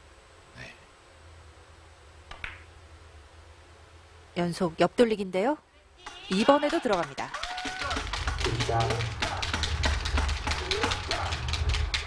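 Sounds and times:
faint low hall hum: 0.0 - 12.0
billiard balls clicking together: 6.1 - 12.0.

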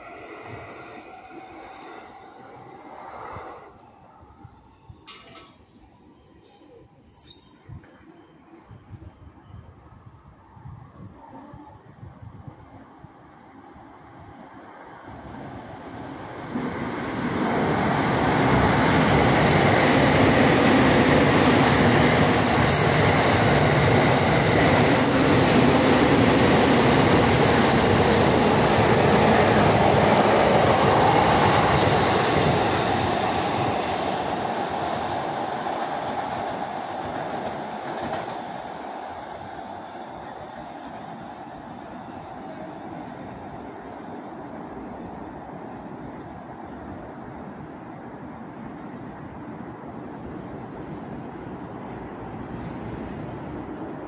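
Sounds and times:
electric train passing: 0.0 - 11.7, 12.3 - 54.0.

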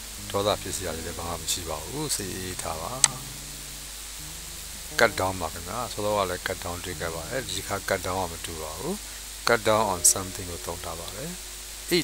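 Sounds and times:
background hiss: 0.0 - 12.0
faint low hum: 0.0 - 12.0.

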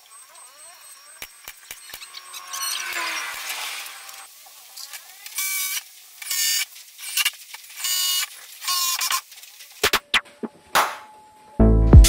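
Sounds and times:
cordless drill motor whine: 0.0 - 4.3.

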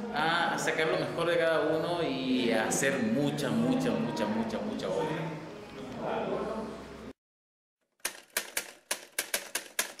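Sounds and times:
typewriter key strikes: 8.0 - 10.0.

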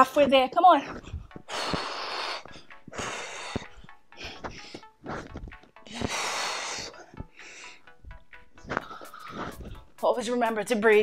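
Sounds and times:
heavy hard breathing: 0.8 - 9.9.

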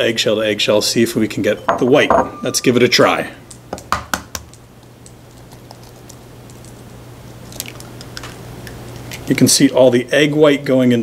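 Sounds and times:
eggshell crackling: 3.4 - 9.4
egg tapping on bowl rim: 3.5 - 5.7.

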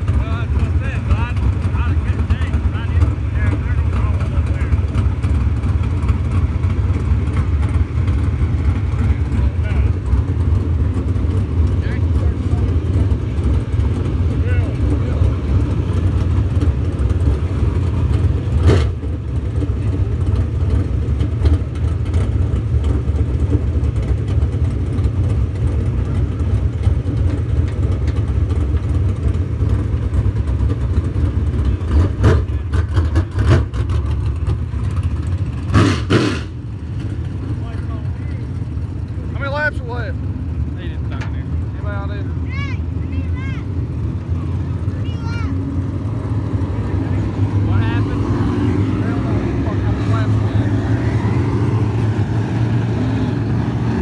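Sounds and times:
race car engines rumbling: 0.0 - 54.0.

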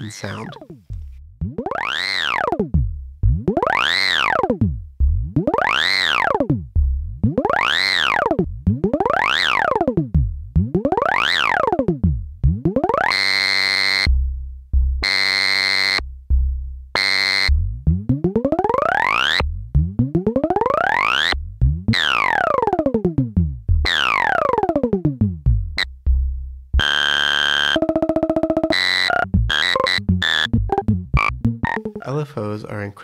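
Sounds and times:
synth pluck with pitch sweeps: 1.4 - 14.2, 17.0 - 26.2, 26.8 - 32.7.

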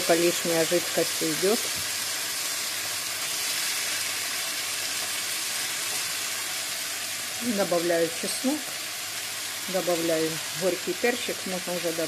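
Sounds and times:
vegetables sizzling in a frying pan: 0.0 - 12.0.

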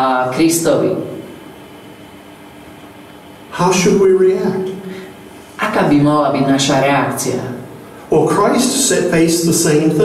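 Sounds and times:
faint room hiss and hum: 0.0 - 10.0.

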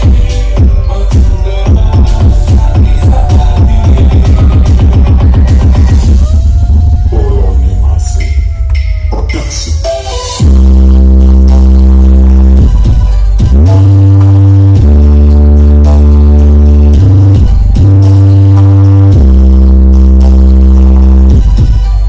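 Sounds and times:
loud deep bass music: 0.0 - 22.0.

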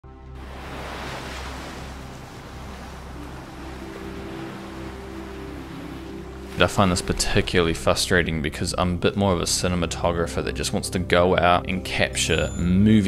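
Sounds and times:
low music drone: 0.0 - 13.0
ocean surf washing: 0.3 - 9.9.

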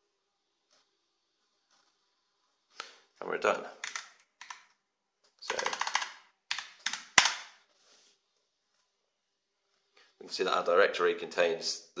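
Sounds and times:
computer keyboard typing: 5.5 - 7.4.

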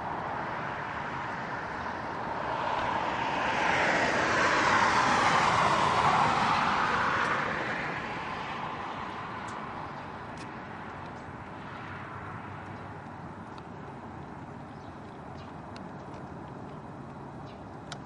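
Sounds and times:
vehicle passing by: 0.0 - 13.1.

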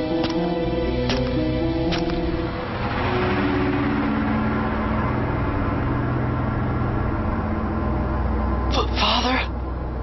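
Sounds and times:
loud rushing rumble: 0.7 - 8.7.

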